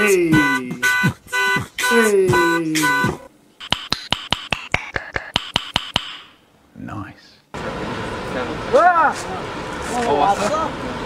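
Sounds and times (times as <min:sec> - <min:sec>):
person speaking: 0:00.0 - 0:01.0, 0:01.8 - 0:03.3
steady background noise: 0:00.0 - 0:11.0
sharp rhythmic knocks: 0:03.0 - 0:06.4.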